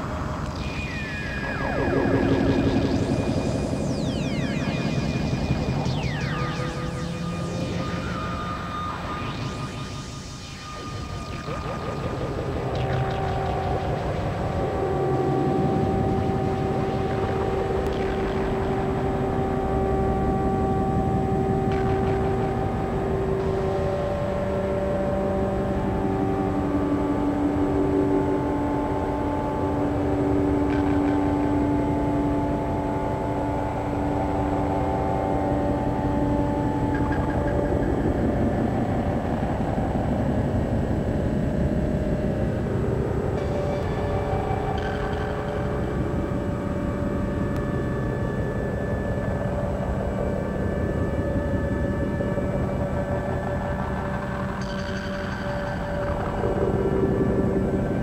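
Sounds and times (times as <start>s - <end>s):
long held electronic tones: 0.0s - 58.0s.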